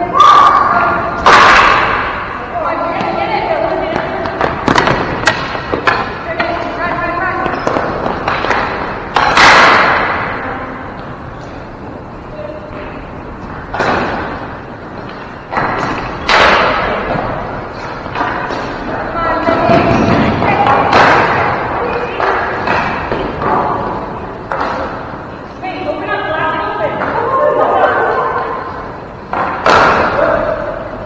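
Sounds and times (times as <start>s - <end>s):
ball and sticks striking: 1.2s - 2.4s, 3.9s - 6.7s, 7.4s - 10.4s, 13.7s - 18.8s, 19.4s - 23.9s, 29.3s - 30.4s.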